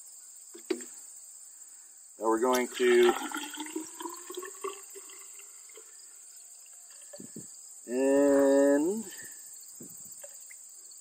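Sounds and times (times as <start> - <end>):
water pouring into cylinder: 2.4 - 6.0, 6.6 - 7.3
water dripping: 2.4 - 7.4.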